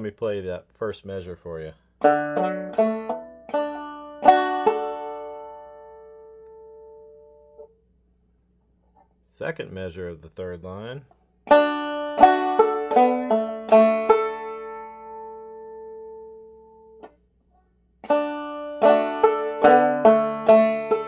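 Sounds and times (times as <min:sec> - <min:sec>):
banjo playing: 0:02.0 - 0:07.7, 0:11.4 - 0:17.2, 0:18.0 - 0:21.0.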